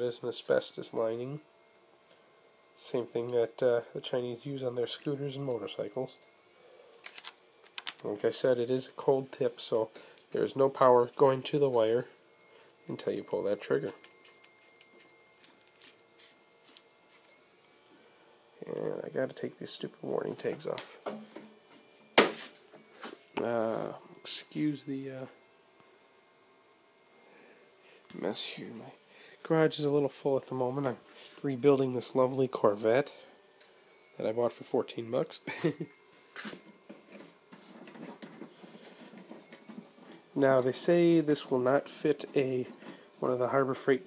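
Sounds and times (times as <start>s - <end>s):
man laughing quietly: 35.4s - 36.0s.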